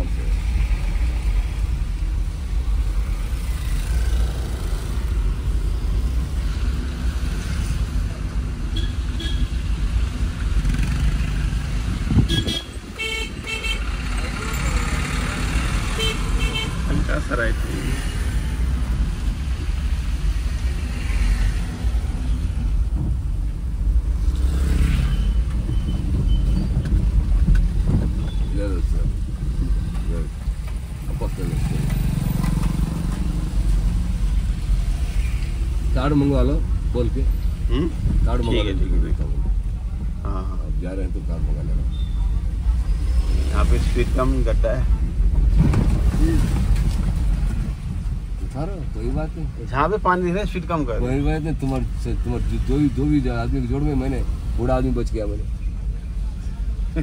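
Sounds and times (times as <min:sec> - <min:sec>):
car engine and road rumble: 0:00.0 - 0:57.0
vehicle horn toots: 0:12.2 - 0:13.9.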